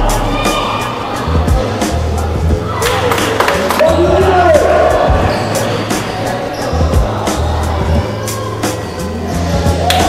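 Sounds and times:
music with heavy bass beat: 0.0s - 3.2s, 3.8s - 10.0s.

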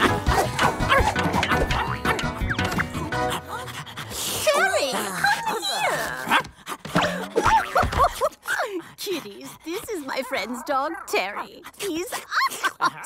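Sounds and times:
cartoon dog yips and whimpers: 0.0s - 2.9s
background music: 0.0s - 7.6s.

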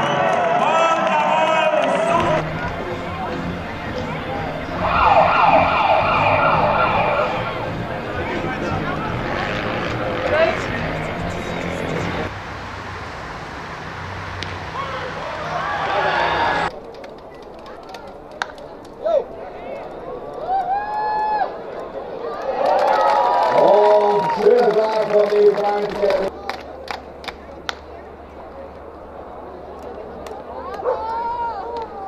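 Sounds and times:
spectators and players chattering: 0.0s - 12.4s, 14.6s - 32.0s
ballpark ambience: 0.0s - 32.0s
drawn-out shouted calls: 4.4s - 7.8s.

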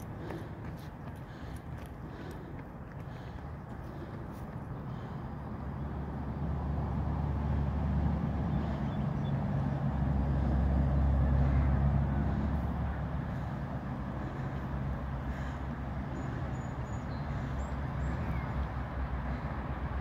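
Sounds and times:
passing vehicle engine rumble: 0.0s - 20.0s.

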